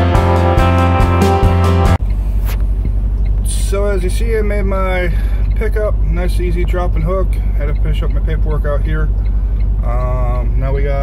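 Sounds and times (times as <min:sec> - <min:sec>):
guitar music: 0:00.0 - 0:02.0
diesel engine idling: 0:00.0 - 0:11.0.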